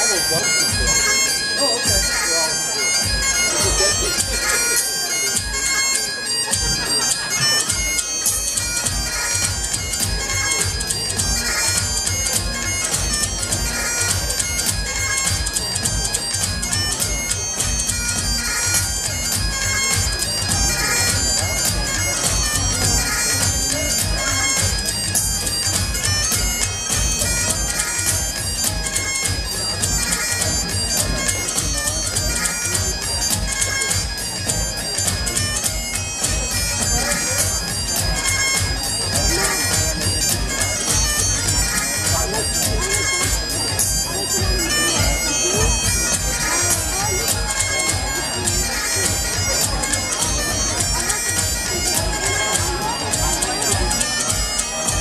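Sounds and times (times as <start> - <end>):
bagpipe drones: 0.0 - 55.0
bagpipes playing a tune: 0.0 - 55.0.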